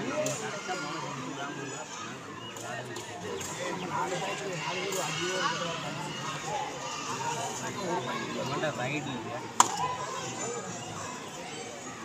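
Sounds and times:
young voices chattering: 0.0 - 12.0.

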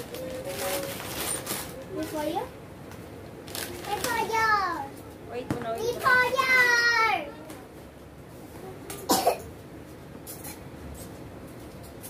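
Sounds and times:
person coughing: 9.1 - 9.5.

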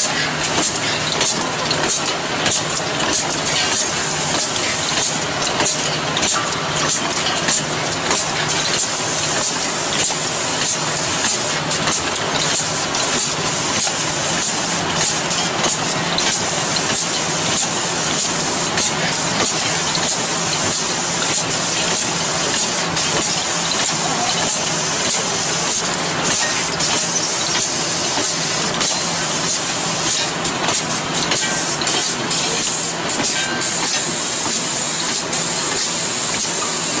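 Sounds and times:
capping machine hissing: 6.8 - 37.0.

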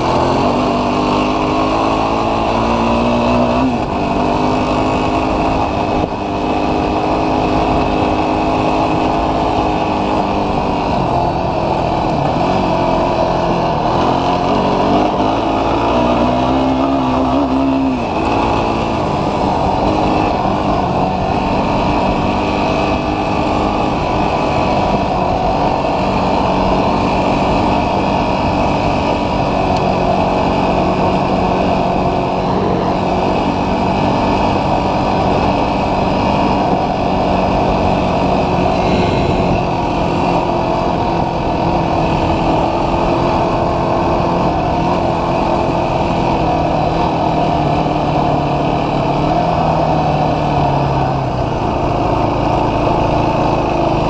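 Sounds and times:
motorcycle engine running: 0.0 - 54.0
wind noise: 0.0 - 54.0.

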